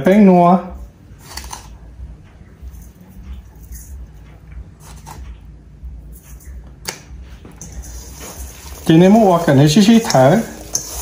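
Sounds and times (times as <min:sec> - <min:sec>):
seasoning shaken into bowl: 0:07.6 - 0:11.0.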